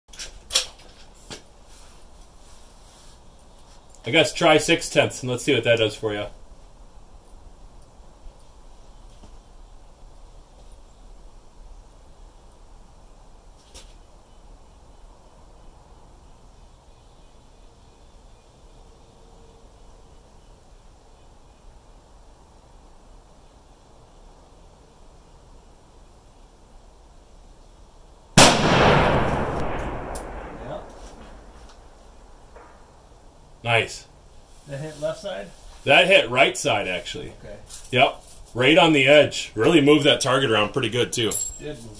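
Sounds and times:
faint background noise: 0.1s - 41.9s
rifle shot with echo: 28.4s - 33.0s.

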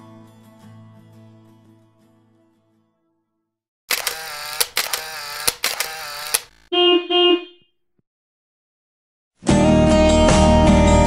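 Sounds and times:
sharp clicks: 3.9s - 6.7s
short honks: 6.6s - 7.7s.

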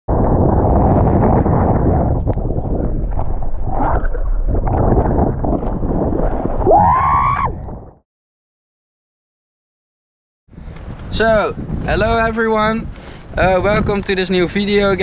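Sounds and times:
wind buffeting microphone: 0.1s - 8.0s, 10.5s - 15.0s.

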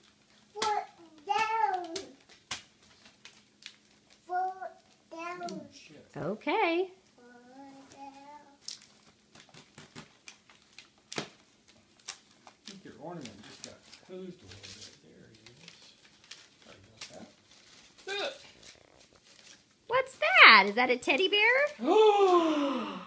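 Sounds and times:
tissue paper crinkling: 8.6s - 19.8s.

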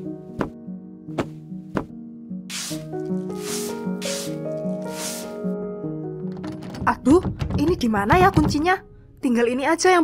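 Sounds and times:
background music: 0.0s - 10.0s
broom sweeping floor: 2.5s - 5.4s.

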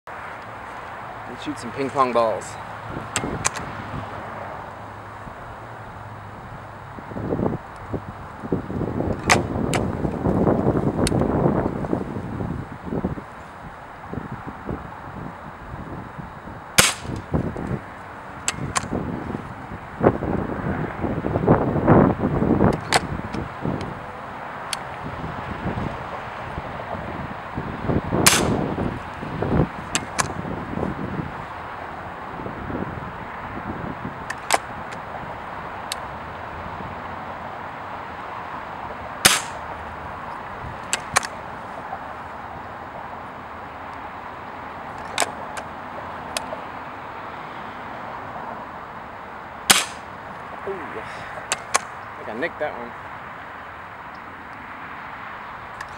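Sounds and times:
pellet gun shots: 16.8s - 17.2s, 28.2s - 28.6s, 39.2s - 39.6s, 49.7s - 50.1s.

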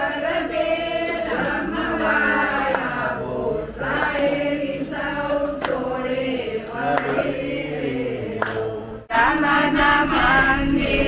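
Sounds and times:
group singing devotional song: 0.0s - 11.0s.

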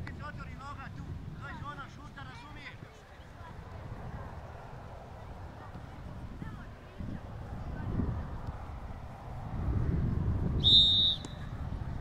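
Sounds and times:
referee's whistle blast: 10.6s - 11.4s.

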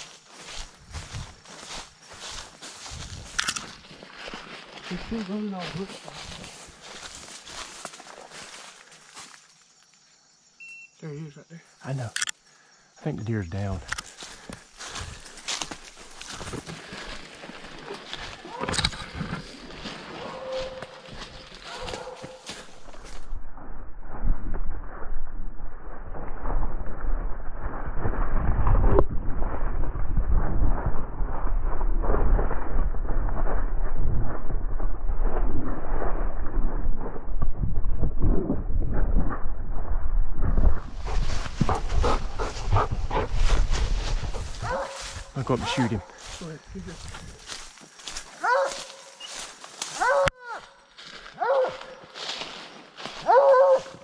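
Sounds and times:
dry leaves crackling: 0.0s - 9.6s, 14.1s - 23.2s, 43.4s - 54.0s
camera rubbing and thumping: 18.6s - 19.6s, 40.4s - 44.8s.

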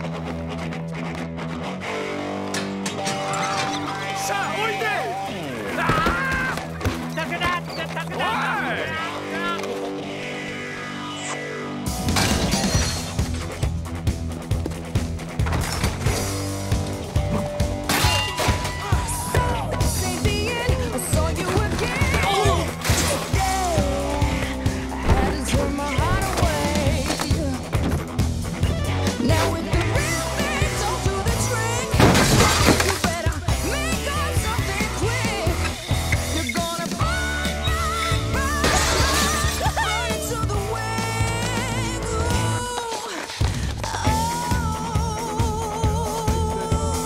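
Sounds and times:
glass breaking: 12.1s - 13.4s, 17.8s - 18.8s, 31.9s - 33.4s, 38.6s - 39.8s
rock song with singer: 16.2s - 47.0s.

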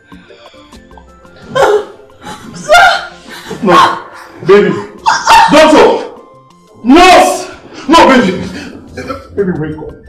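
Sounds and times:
soft background music: 0.0s - 10.0s
person wailing: 2.6s - 4.1s.

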